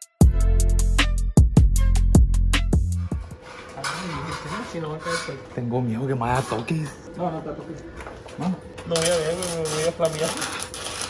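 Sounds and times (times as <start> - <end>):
backing music with drum beat: 0.0 - 3.4.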